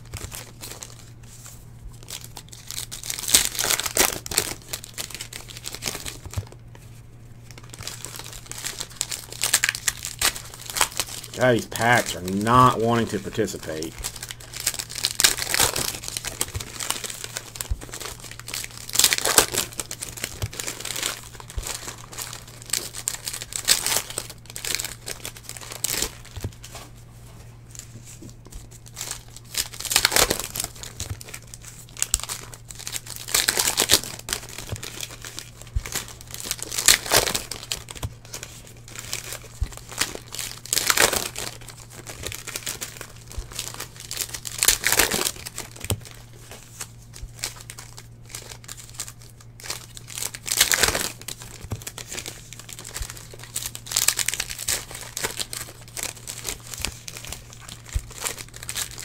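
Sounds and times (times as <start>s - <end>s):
foil wrappers tearing and crinkling: 0.0s - 6.6s, 7.4s - 27.0s, 27.7s - 59.0s.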